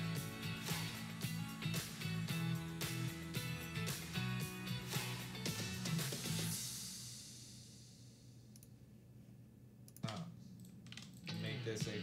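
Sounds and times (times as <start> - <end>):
computer keyboard typing: 9.9 - 11.3.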